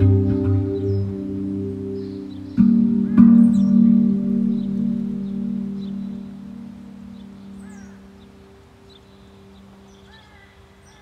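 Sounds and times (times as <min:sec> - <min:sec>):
steel tongue drum ringing: 0:00.0 - 0:08.5
faint bird chirps: 0:00.0 - 0:11.0.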